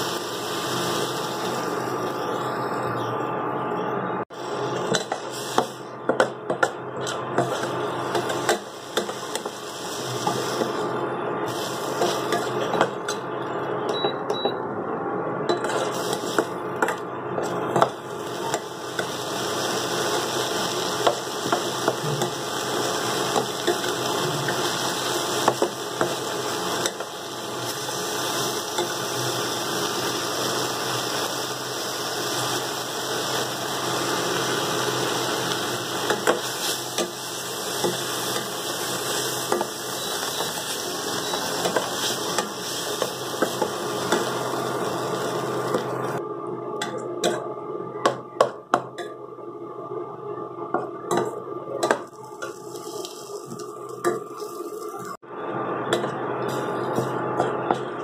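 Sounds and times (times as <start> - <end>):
gravy sizzling in a metal pan: 0.0 - 2.6, 7.4 - 10.9, 17.7 - 46.2.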